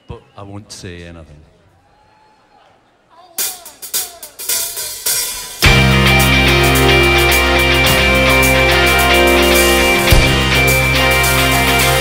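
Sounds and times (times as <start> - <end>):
rock band playing: 3.4 - 12.0
snare and cymbal hits: 3.4 - 12.0.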